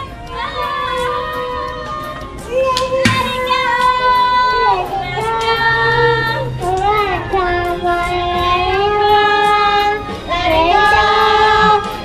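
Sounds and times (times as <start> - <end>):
high voice singing long notes: 0.6 - 12.0.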